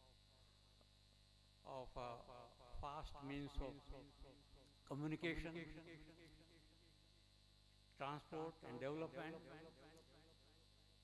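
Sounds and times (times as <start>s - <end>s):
faint electrical hum: 0.0s - 11.0s
man speaking: 1.7s - 4.1s.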